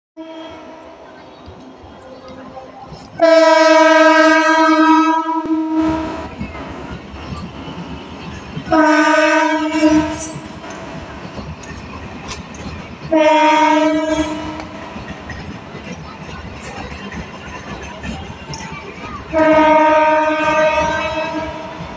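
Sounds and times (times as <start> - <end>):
locomotive horn blasts: 0.2 - 0.8, 3.2 - 6.3, 8.7 - 10.4, 13.1 - 14.7, 19.4 - 21.8
train coaches rumbling on track: 0.2 - 21.9.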